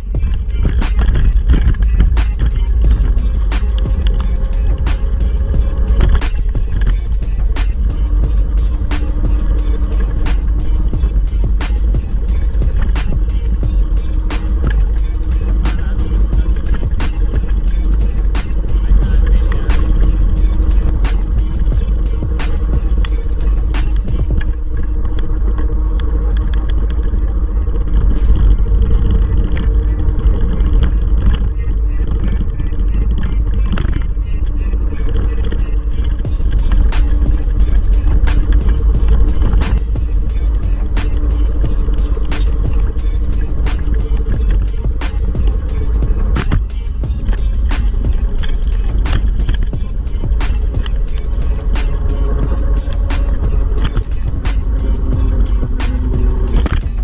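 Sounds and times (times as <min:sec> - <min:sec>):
music: 0:00.0 - 0:57.0
scooter rolling on concrete rumble: 0:00.0 - 0:57.0.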